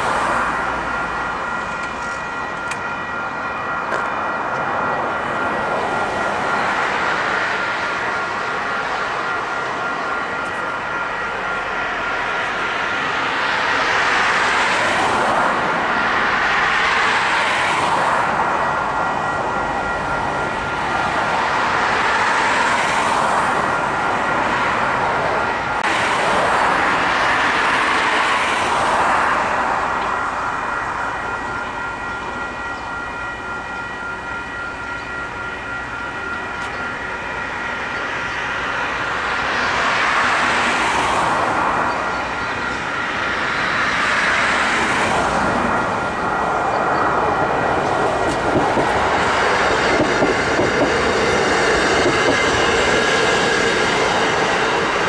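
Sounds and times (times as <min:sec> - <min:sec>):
passing vehicles: 0:00.0 - 0:55.0
steady high-pitched tones: 0:00.0 - 0:55.0.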